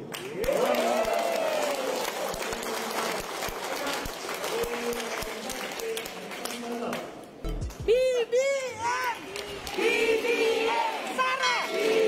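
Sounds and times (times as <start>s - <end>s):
crowd applauding: 0.0s - 7.0s, 9.0s - 12.0s.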